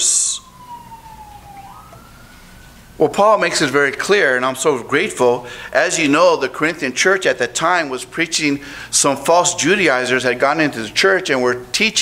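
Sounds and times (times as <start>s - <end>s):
faint distant siren wail: 0.0s - 3.8s.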